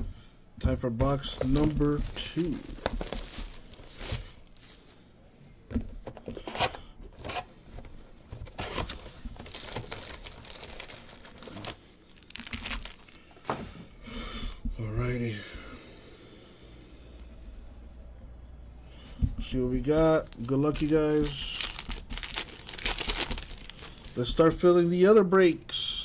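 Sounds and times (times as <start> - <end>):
plastic wrapping crinkling: 1.0 - 5.0, 8.4 - 13.4, 19.8 - 24.4.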